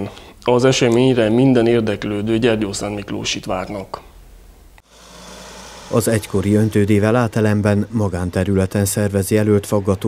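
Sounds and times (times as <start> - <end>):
tyre hiss: 4.8 - 7.5.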